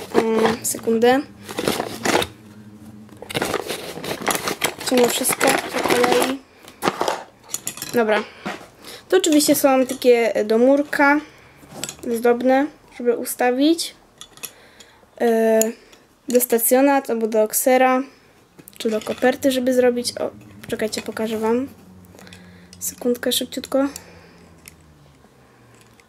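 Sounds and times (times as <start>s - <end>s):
cardboard box rustling: 0.0s - 2.4s, 3.2s - 7.2s.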